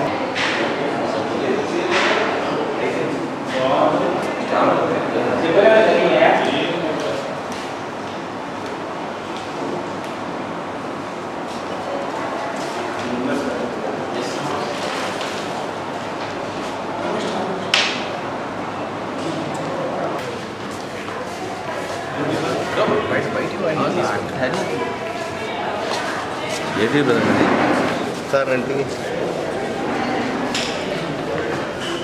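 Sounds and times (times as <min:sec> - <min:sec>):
murmur of voices: 0:00.0 - 0:32.0.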